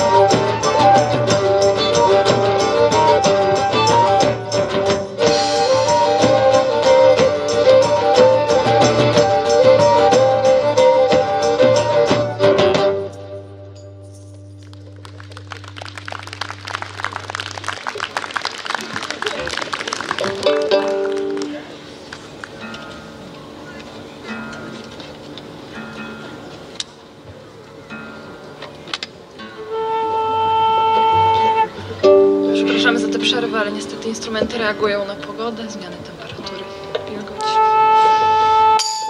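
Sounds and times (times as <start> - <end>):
plucked strings tuning: 30.8 - 38.2.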